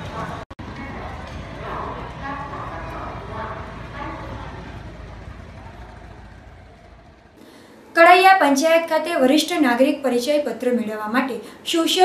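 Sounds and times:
distant traffic rumble: 0.0 - 11.7.

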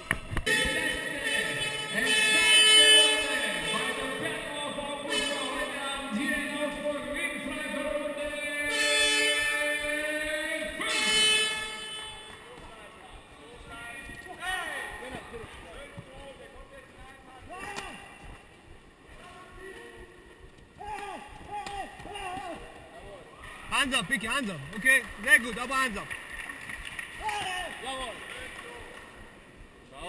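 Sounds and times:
loud held pitched tone: 0.4 - 12.6.

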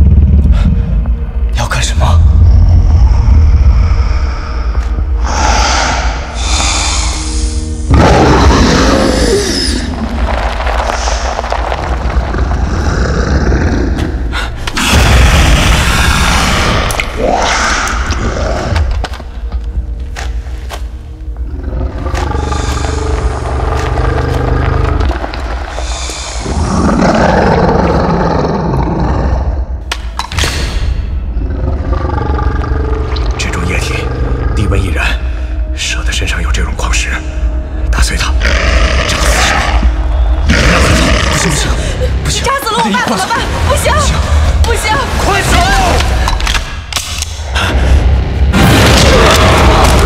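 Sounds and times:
deep rumble: 0.0 - 29.8
action film music: 0.0 - 50.0.

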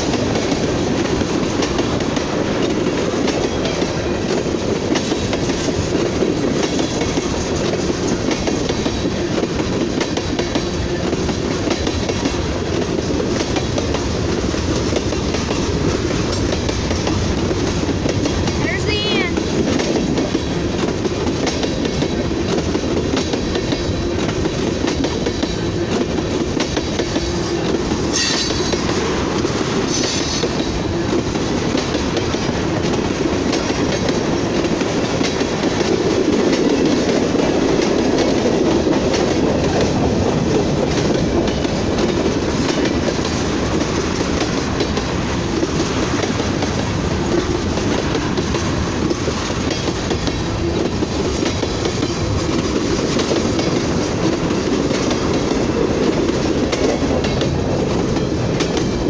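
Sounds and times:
freight train rolling past: 0.0 - 59.0.

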